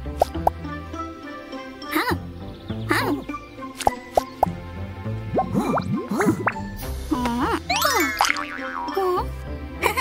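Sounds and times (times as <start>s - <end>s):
background music: 0.0s - 10.0s
cartoon boing sound effects: 7.7s - 9.2s.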